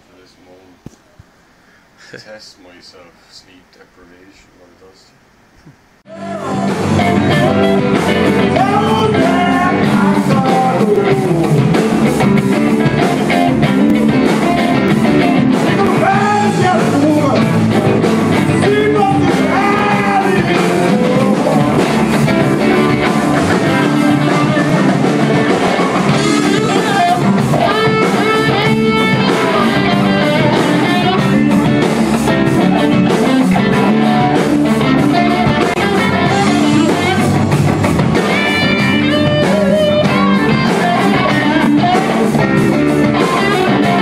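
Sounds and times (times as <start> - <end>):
drum kit: 5.6 - 44.0
person singing: 6.1 - 12.0, 15.7 - 17.8, 18.4 - 31.7, 35.1 - 37.4, 38.3 - 44.0
electric guitars: 6.1 - 44.0.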